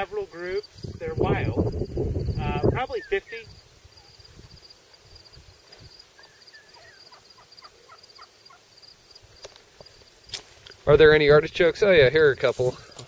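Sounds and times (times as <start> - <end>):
insects chirping: 0.0 - 13.0
wild turkey calls: 2.7 - 4.2, 6.2 - 9.4.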